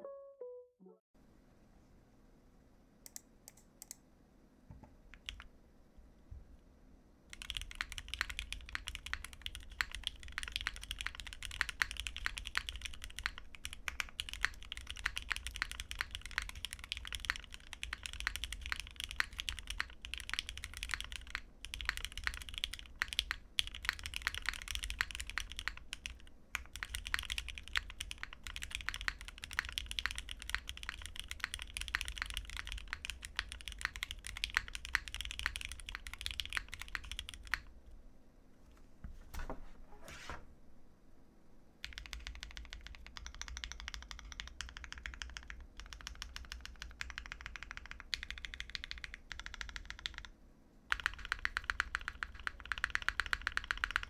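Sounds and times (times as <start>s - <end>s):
mechanical keyboard typing: 5.1s - 5.5s, 7.3s - 37.7s, 41.8s - 54.0s.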